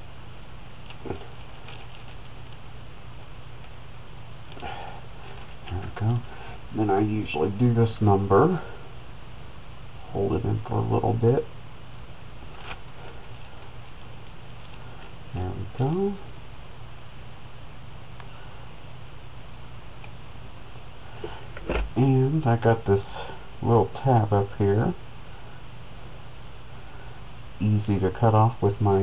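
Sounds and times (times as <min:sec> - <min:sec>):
steady background hiss: 0:00.0 - 0:29.0
steady low hum: 0:00.0 - 0:29.0
plastic ticks and rustling: 0:00.8 - 0:02.6.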